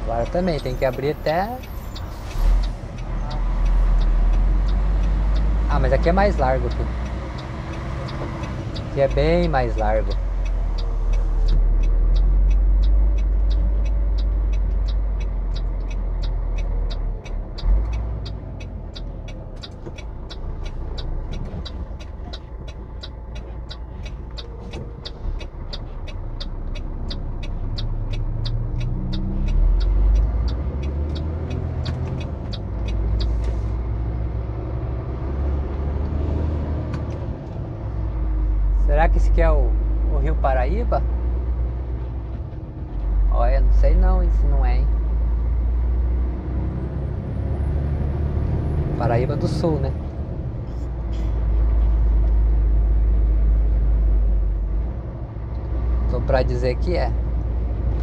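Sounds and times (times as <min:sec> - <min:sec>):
diesel truck engine rumble: 0:00.0 - 0:58.0
turn signal ticking: 0:00.0 - 0:58.0.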